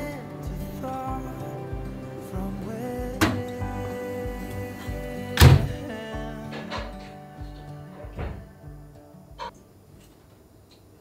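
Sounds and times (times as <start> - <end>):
background music: 0.0 - 9.5
oven door thunk: 5.4 - 5.8.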